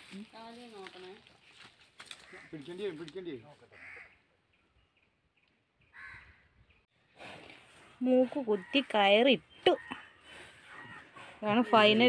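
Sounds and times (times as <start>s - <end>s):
crow cawing: 2.2s - 3.0s, 3.7s - 4.3s, 5.9s - 6.6s, 9.7s - 11.2s.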